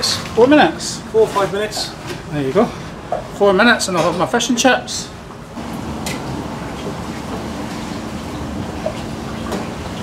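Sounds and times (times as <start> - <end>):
fryer hiss and hum: 0.0 - 10.0.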